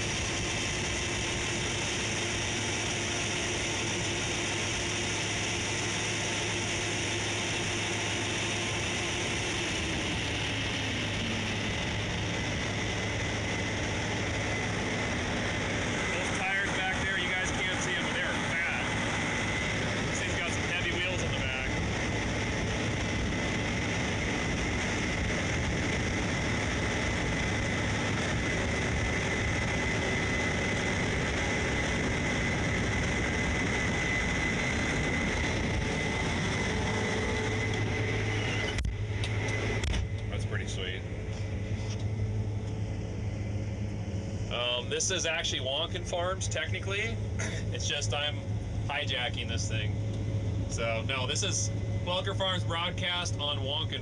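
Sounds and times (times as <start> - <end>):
combine harvester running: 0.0 - 54.0
high steady whine: 0.0 - 54.0.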